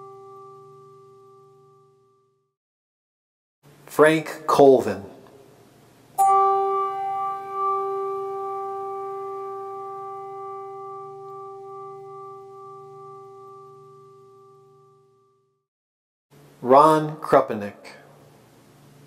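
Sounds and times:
church bell toll: 6.2 - 13.9.

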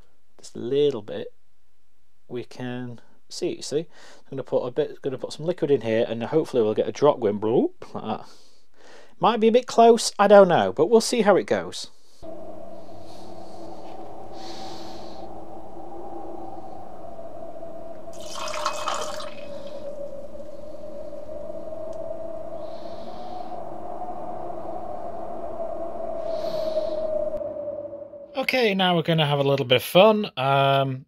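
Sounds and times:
soft hissing: 12.0 - 27.4
low wavering drone: 12.2 - 28.6
rush of noise: 12.2 - 28.6.

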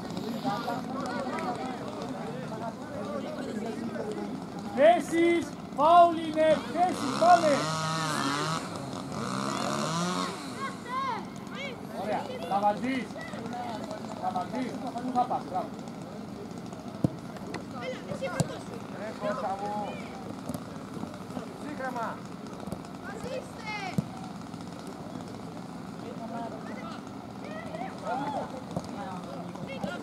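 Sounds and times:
outdoor background noise: 0.0 - 30.0
voices shouting short calls: 5.0 - 13.6.

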